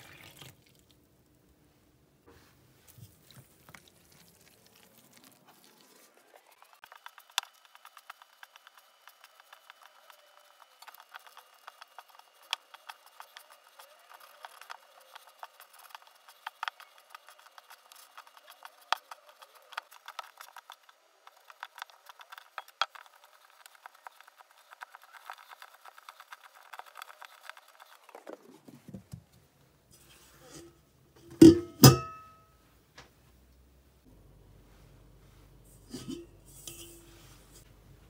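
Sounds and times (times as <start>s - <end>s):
hands kneading dough: 2.3s - 29.1s
fingers scraping metal bowl: 30.0s - 30.8s, 35.7s - 37.7s.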